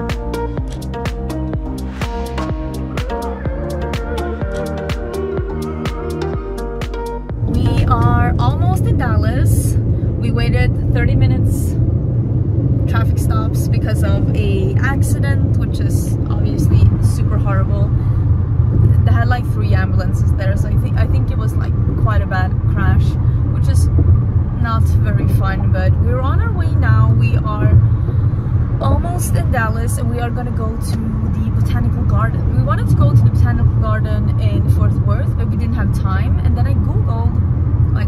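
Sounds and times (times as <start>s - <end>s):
car road and engine rumble: 0.0s - 38.0s
woman talking: 7.4s - 11.8s, 12.9s - 18.0s, 18.9s - 23.9s, 24.6s - 27.9s, 28.8s - 38.0s.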